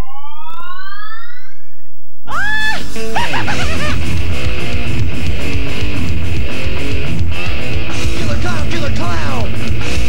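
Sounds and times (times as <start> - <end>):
rising electronic siren tone: 0.0 - 2.1.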